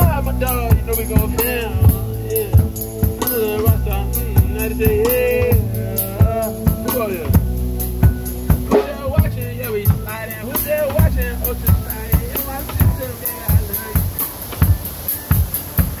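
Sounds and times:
person singing into microphone: 0.0s - 15.4s
drum kit beat: 0.0s - 16.0s
synthesizer keyboard: 0.0s - 16.0s.

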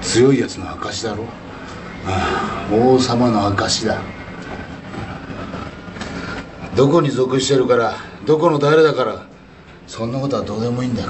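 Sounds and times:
rumbling hiss: 0.0s - 11.0s.

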